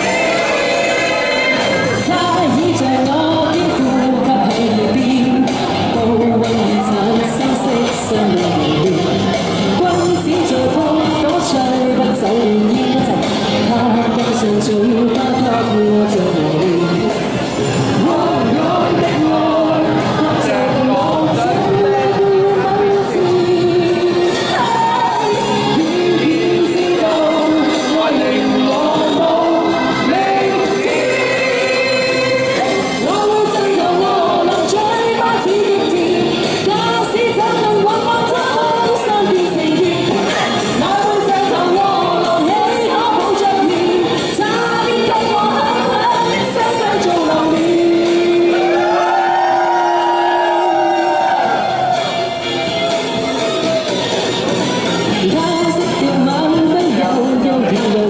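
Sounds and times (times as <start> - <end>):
woman singing into a microphone: 0.0 - 51.7, 55.0 - 58.0
music accompaniment: 0.0 - 58.0
pop backing track: 0.0 - 58.0.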